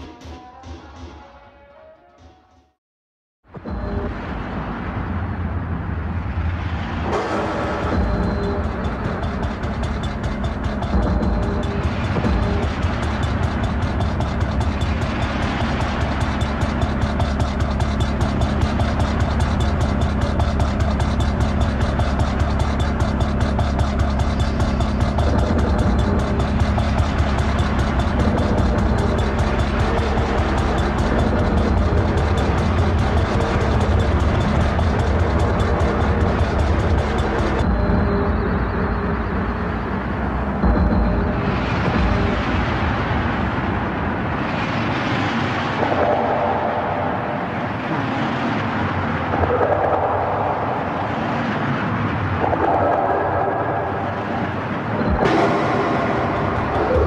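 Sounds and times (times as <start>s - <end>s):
loud industrial music: 3.6s - 5.5s, 6.2s - 57.0s.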